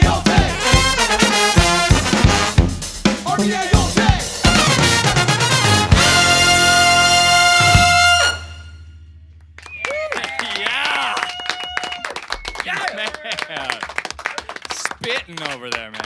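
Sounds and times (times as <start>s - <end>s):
brass band final chord: 0.6s - 2.9s, 4.4s - 9.0s
people clapping: 9.4s - 16.0s
people whooping: 9.6s - 14.6s
people laughing: 9.9s - 16.0s.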